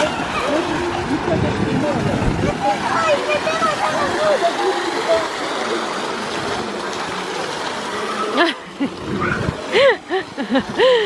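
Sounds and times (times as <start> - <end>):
fountain splashing into pool: 0.0 - 11.0
voices chattering and calling: 0.0 - 11.0.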